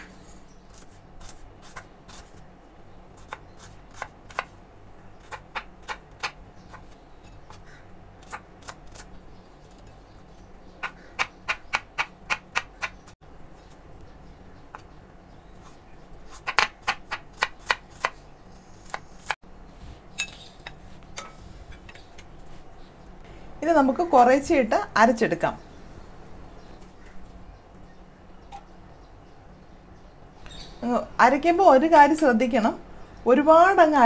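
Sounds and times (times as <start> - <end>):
knife chopping on wooden board: 10.8 - 13.1, 16.3 - 18.2.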